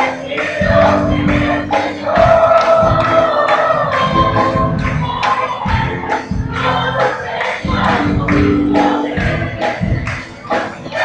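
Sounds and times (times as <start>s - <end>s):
band with steady beat: 0.0s - 11.0s
group singing held notes: 0.0s - 11.0s.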